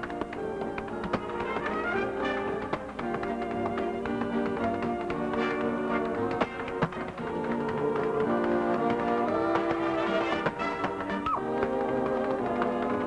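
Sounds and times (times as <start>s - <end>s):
dance shoes tapping on stage: 0.0s - 13.0s.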